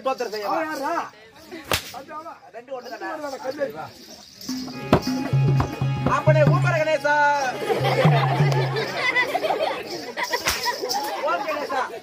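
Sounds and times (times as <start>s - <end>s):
cloth whip cracking: 1.6s - 2.1s, 10.2s - 11.1s.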